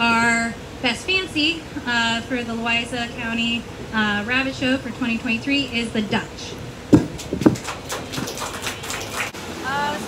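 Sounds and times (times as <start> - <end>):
crowd clapping: 7.0 - 9.4.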